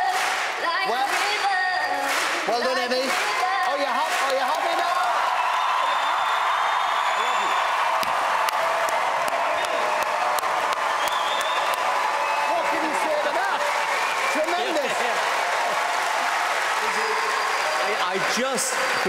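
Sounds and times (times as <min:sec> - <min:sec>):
audience applauding: 0:00.0 - 0:19.0
voices cheering: 0:00.0 - 0:19.0.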